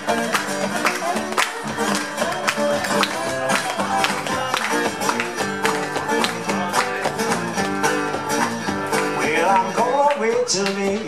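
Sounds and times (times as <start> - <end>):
acoustic guitars playing blues: 0.0 - 11.0.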